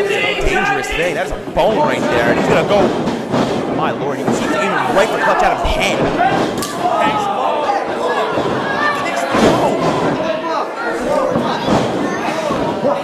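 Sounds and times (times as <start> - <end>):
crowd shouting: 0.0 - 2.9, 4.1 - 13.0
bodies thudding on ring mat: 5.7 - 7.2, 11.1 - 13.0.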